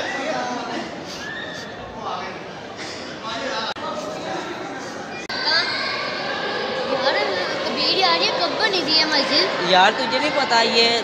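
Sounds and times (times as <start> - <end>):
echoing chatter of visitors: 0.0 - 11.0.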